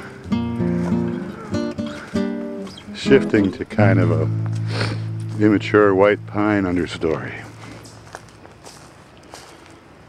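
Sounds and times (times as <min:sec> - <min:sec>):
acoustic guitar plucking: 0:00.0 - 0:08.2.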